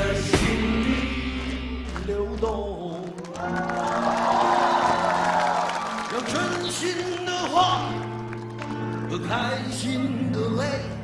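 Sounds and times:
live pop-rock band playing: 0.0s - 11.0s.

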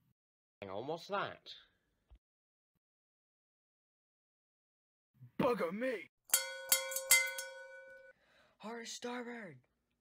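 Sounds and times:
warning bell ringing: 6.3s - 8.1s.

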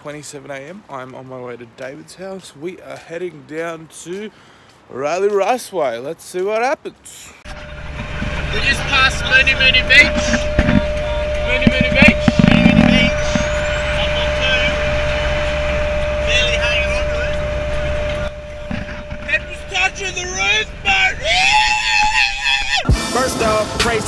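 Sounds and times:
car road and engine drone: 7.4s - 22.2s
thin constant tone: 7.5s - 21.1s
rising tone: 7.5s - 23.8s
indistinct talk: 8.2s - 15.2s.

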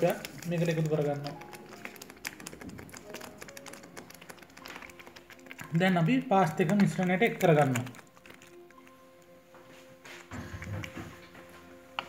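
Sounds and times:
sauce bubbles popping: 0.0s - 9.3s.

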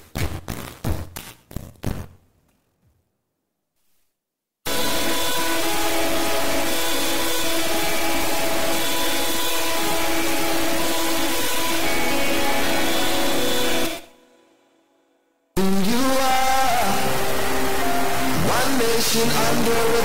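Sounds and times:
harsh distorted noise: 0.0s - 2.2s, 4.7s - 14.1s, 15.6s - 20.0s
sustained tones: 4.7s - 14.8s.

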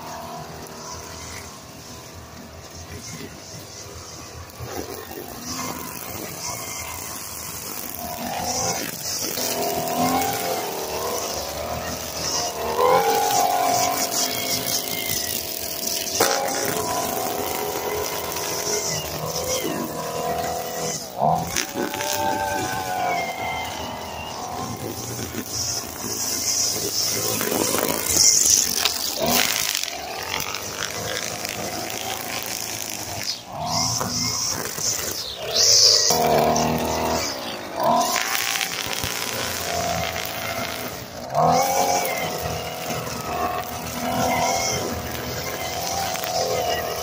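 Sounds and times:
string trimmer engine revving: 0.0s - 47.0s.

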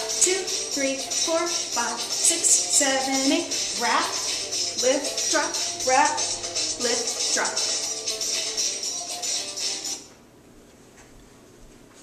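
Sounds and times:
background music: 0.0s - 10.1s.

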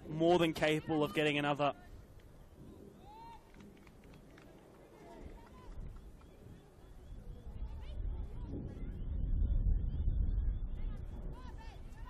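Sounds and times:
faint open-air ambience: 0.0s - 12.0s.

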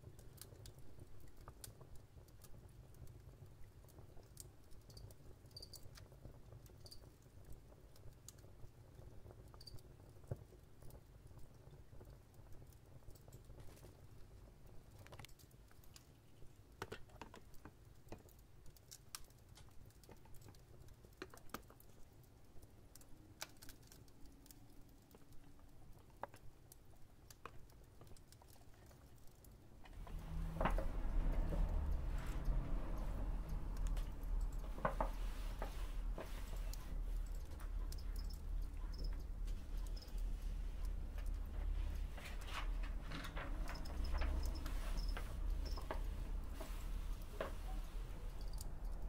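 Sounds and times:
steady low rumble: 29.8s - 49.0s.

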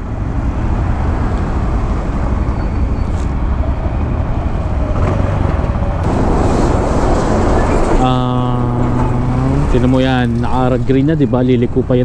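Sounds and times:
road traffic passing: 0.0s - 12.0s
truck passing: 0.0s - 12.0s.

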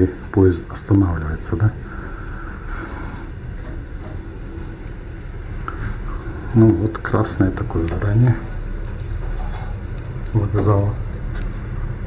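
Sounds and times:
train carriage low rumble: 0.0s - 12.0s.

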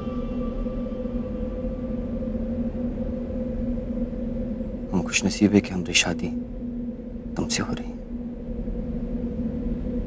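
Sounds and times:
low drone: 0.0s - 10.0s.

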